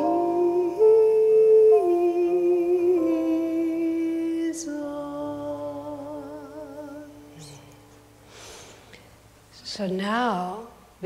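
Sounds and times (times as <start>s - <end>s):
person singing slow melody: 0.0s - 8.6s.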